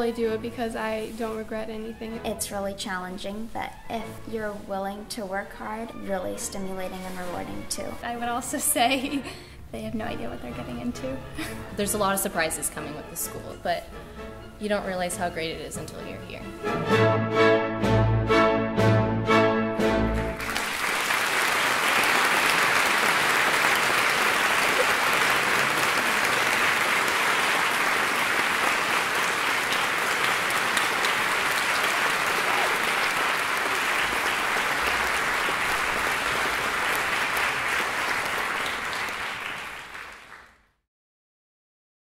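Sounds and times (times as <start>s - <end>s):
orchestral music: 9.8s - 39.5s
audience applauding: 20.2s - 40.6s.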